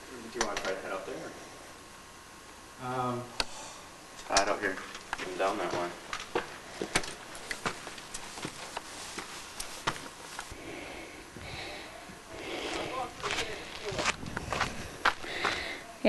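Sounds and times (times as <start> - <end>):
footsteps on rocky ground: 5.2 - 10.6, 12.4 - 15.8
person speaking: 11.5 - 14.6.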